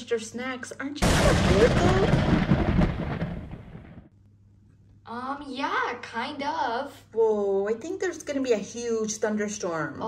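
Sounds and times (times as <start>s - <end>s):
rolling thunder: 1.0s - 4.1s.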